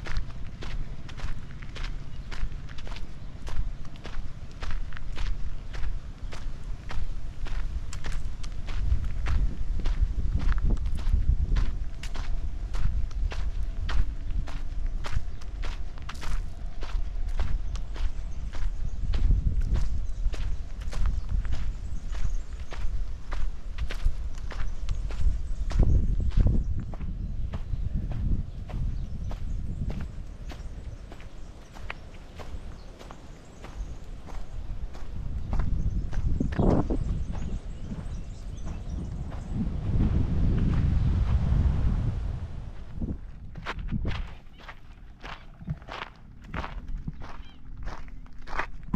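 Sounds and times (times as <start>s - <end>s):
footsteps crunching on dry leaves: 27.9s - 39.4s.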